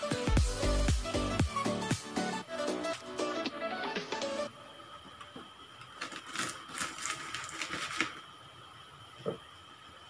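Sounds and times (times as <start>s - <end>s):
background music: 0.0s - 4.6s.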